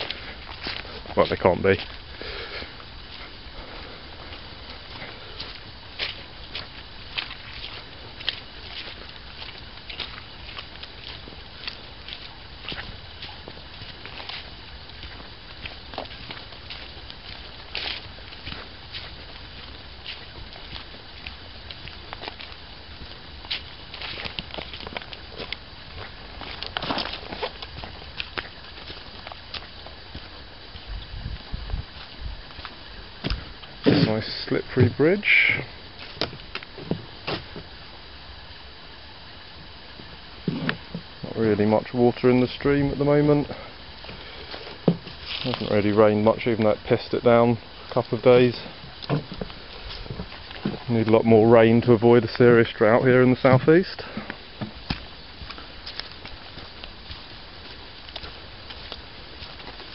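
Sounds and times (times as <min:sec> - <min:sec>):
footsteps on wooden footbridge: 0:00.0 - 0:38.0, 0:39.9 - 0:41.9, 0:42.9 - 0:59.9
footsteps on leafy dirt path: 0:00.0 - 0:59.9
low background hiss: 0:00.0 - 0:59.9.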